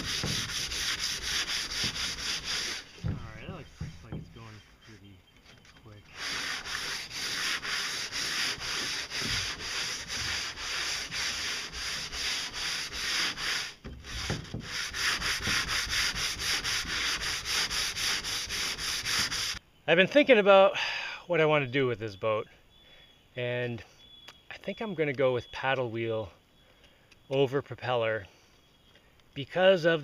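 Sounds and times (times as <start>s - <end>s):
sandpaper rubbing on a hull: 0.0s - 4.1s, 6.0s - 19.6s.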